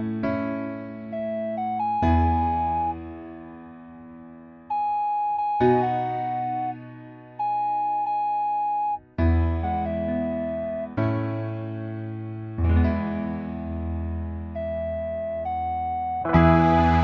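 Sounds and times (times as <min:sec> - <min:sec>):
electric piano chords: 0:00.0 - 0:17.0
held single-note melody: 0:01.1 - 0:03.3, 0:04.7 - 0:09.0, 0:09.6 - 0:10.9, 0:14.6 - 0:17.0
bass line: 0:01.2 - 0:03.1, 0:12.6 - 0:17.0.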